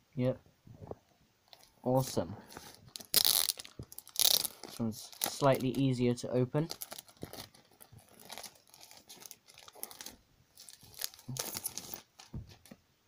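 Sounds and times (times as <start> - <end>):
plastic packaging tearing and crinkling: 1.5 - 6.0, 6.6 - 12.8.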